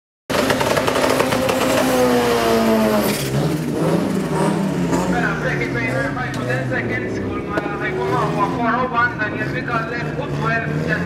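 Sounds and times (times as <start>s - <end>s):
engine at high revs: 0.3s - 11.0s.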